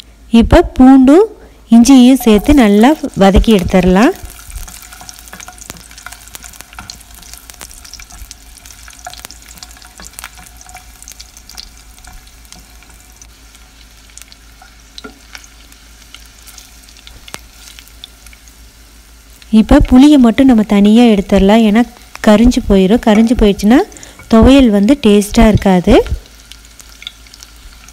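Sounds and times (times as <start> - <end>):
garlic sizzling in hot oil: 0.5 - 27.9.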